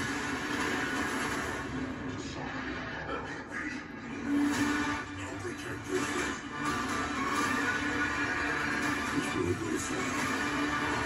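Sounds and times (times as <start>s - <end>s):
trailer sound effects from television: 0.0s - 11.0s.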